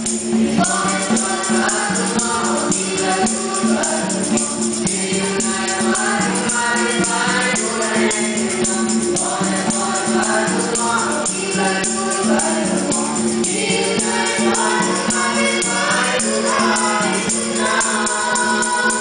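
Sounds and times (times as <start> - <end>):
light hand percussion: 0.0 - 19.0
vocal group singing in harmony: 0.0 - 19.0.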